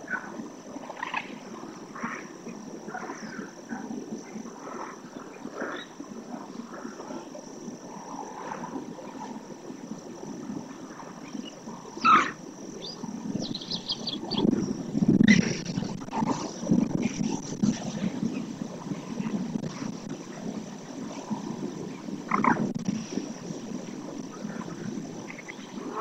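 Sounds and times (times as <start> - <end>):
birds calling: 12.0 - 14.5.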